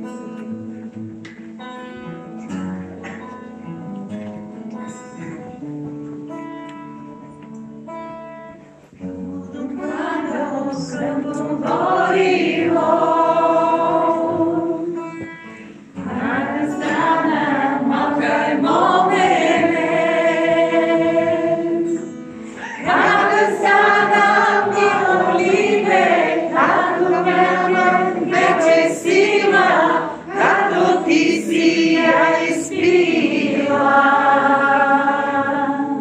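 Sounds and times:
group singing long notes: 0:09.0 - 0:36.0.

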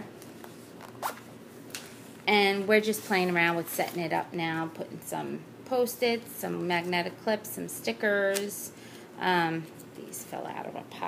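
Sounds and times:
zipper being pulled open: 0:00.8 - 0:01.2.

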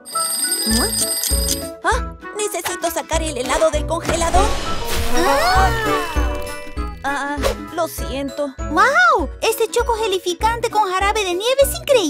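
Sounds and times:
alarm clock ringing rapidly: 0:00.0 - 0:01.6.

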